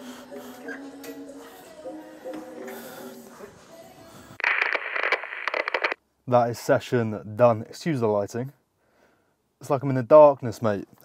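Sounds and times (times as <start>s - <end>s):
crackling radio static: 4.4s - 6.0s.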